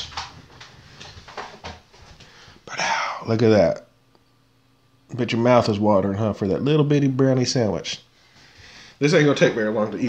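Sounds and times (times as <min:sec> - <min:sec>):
man speaking: 0:02.7 - 0:03.9, 0:05.1 - 0:08.1, 0:09.0 - 0:10.0.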